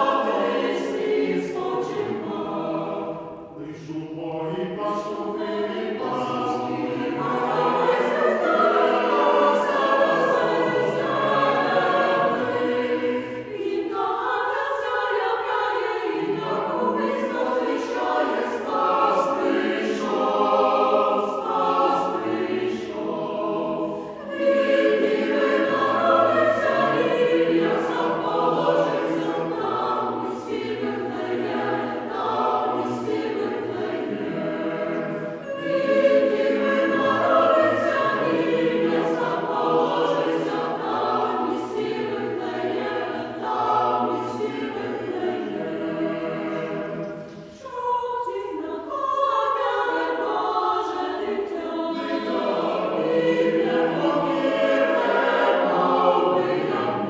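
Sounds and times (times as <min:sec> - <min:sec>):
church choir singing a carol: 0:00.0 - 0:57.0.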